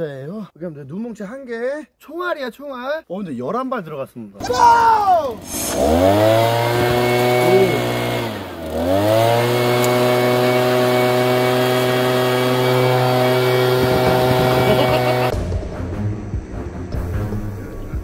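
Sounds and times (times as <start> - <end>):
leaf blower engine at full throttle: 4.4 - 15.4
music: 13.8 - 18.0.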